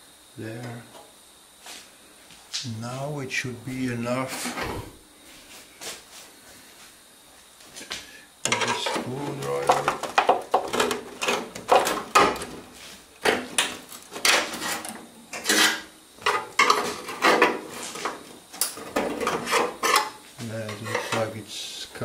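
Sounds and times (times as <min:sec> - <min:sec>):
sheet metal clanks and scrapes: 0:14.2 - 0:18.2, 0:18.8 - 0:21.3.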